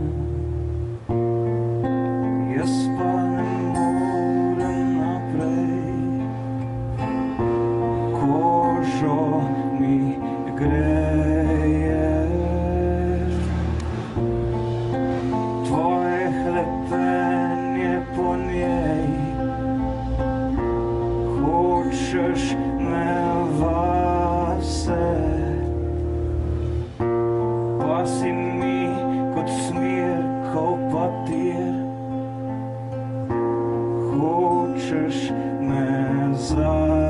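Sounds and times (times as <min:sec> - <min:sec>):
man singing: 0:00.0 - 0:00.7, 0:02.2 - 0:13.9, 0:15.5 - 0:26.1, 0:27.7 - 0:32.9, 0:34.0 - 0:37.0
acoustic guitar chords strummed: 0:00.0 - 0:37.0.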